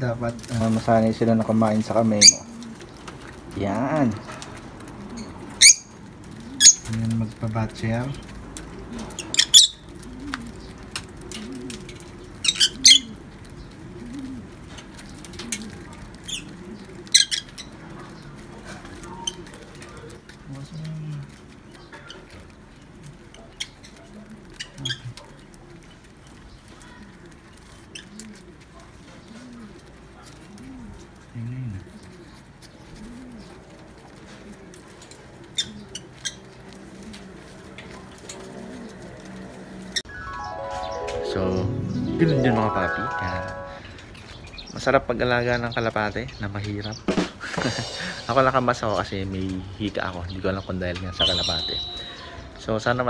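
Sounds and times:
pigeons cooing: 0.0s - 46.2s, 46.9s - 53.0s
beaks pecking grain from a hand: 0.3s - 40.0s.

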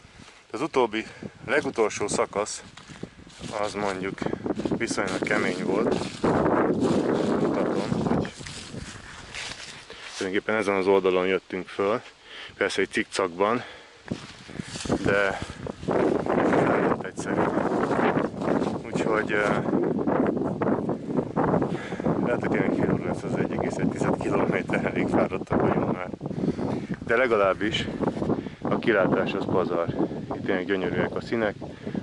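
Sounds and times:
wind buffeting microphone: 0.0s - 11.7s, 12.5s - 32.0s
dry leaves rustling: 2.6s - 10.5s, 14.1s - 19.7s
quiet breathing: 8.8s - 10.3s, 12.0s - 12.6s, 13.5s - 15.8s, 21.6s - 22.2s, 26.3s - 27.1s, 27.8s - 28.7s.

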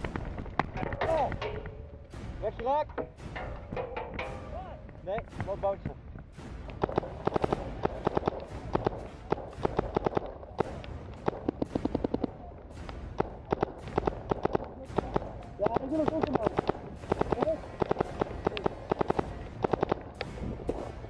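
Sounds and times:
distant paintball markers popping: 6.2s - 20.8s
paintball marker rapid firing: 6.6s - 21.0s.

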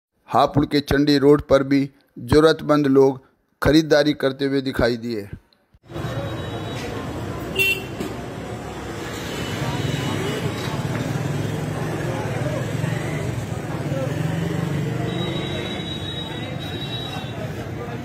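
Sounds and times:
motorcycles and traffic: 5.8s - 18.0s
people's voices: 5.9s - 18.0s
high-pitched vehicle horn: 7.5s - 8.0s, 15.0s - 17.5s.

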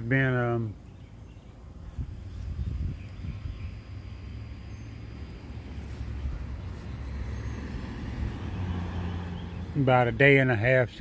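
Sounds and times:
wind buffeting microphone: 1.8s - 4.0s.

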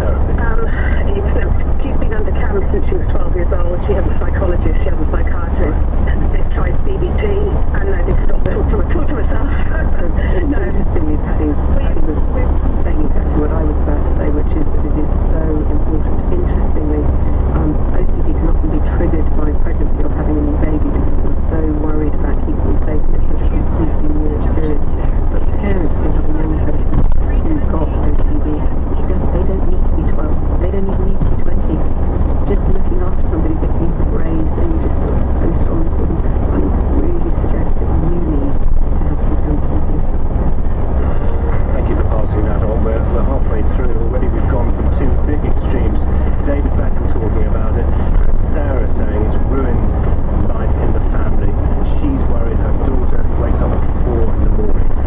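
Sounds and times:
road and engine rumble in van cab: 0.0s - 55.0s.

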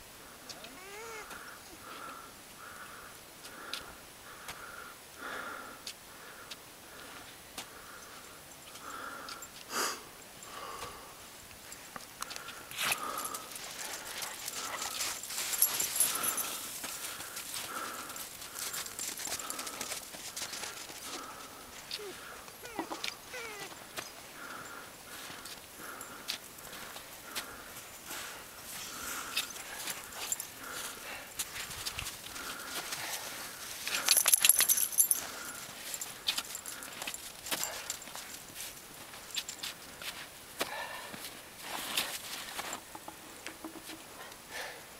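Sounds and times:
hard breathing: 0.3s - 44.9s.

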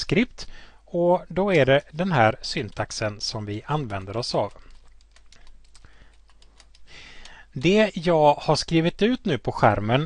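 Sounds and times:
keyboard typing clicks: 3.8s - 7.4s.

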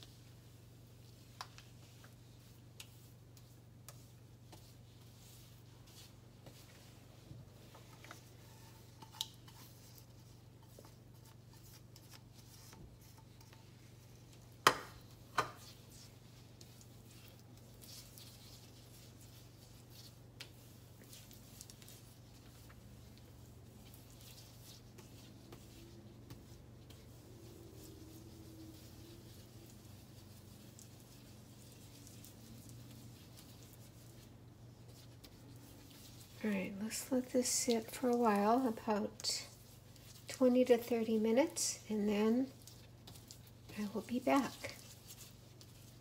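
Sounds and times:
low steady hum: 0.0s - 46.0s
sponge rubbing glass stovetop: 15.4s - 42.6s.

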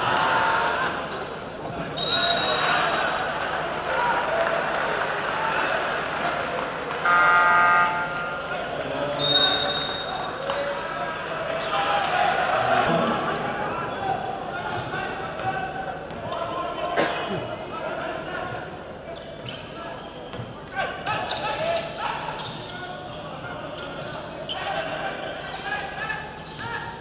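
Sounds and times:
crowd chatter: 0.0s - 27.0s
shoe squeaks: 0.7s - 2.8s, 19.1s - 24.8s, 26.4s - 27.0s
horn-like buzzer: 7.0s - 8.3s.

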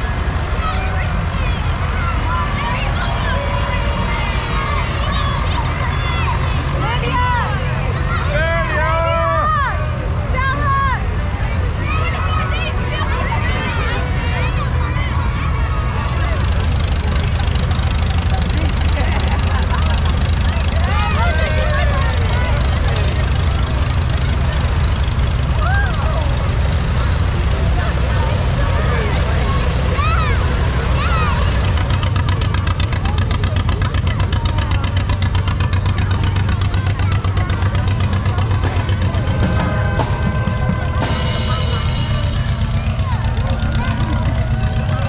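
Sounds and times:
children shouting: 0.0s - 45.0s
crowd voices: 0.0s - 45.0s
vehicle engines rumbling: 0.0s - 45.0s.

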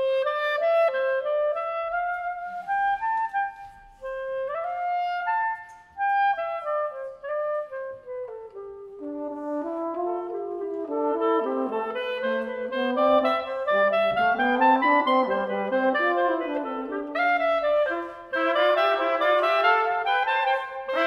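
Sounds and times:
clarinet folk melody: 0.0s - 21.0s
brass horn descending line: 10.8s - 21.0s.

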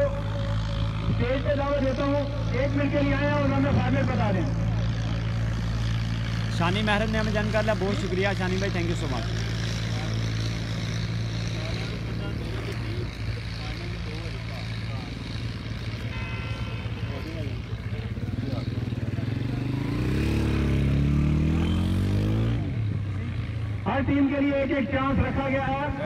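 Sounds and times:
engine revving: 0.0s - 24.4s.

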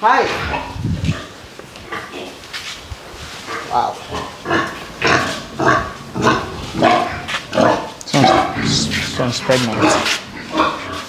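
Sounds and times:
pigs grunting: 0.2s - 2.4s, 3.4s - 11.0s.

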